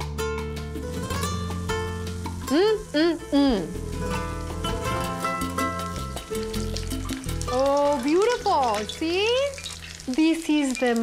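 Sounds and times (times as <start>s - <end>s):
background music of held notes: 0.0s - 11.0s
fish sizzling in hot oil: 0.8s - 11.0s.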